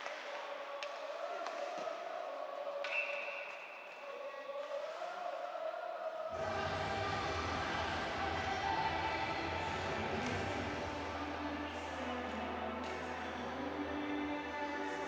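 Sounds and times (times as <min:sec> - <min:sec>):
arena music with heavy bass: 0:06.4 - 0:12.8.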